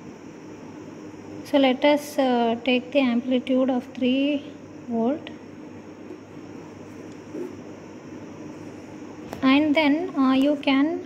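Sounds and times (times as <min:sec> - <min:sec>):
room noise hum and hiss: 0:00.0 - 0:11.0.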